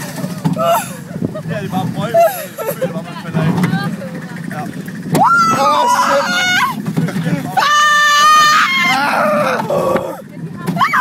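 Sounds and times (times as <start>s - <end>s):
roller coaster rumbling on track: 0.0s - 11.0s
riders talking: 1.3s - 7.6s.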